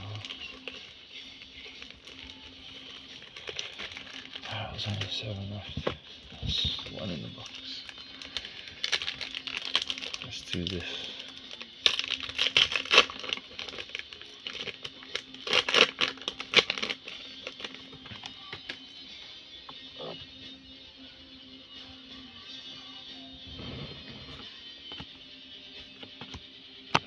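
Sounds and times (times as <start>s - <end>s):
foil wrapper crinkling: 0.0s - 5.4s, 6.5s - 18.8s.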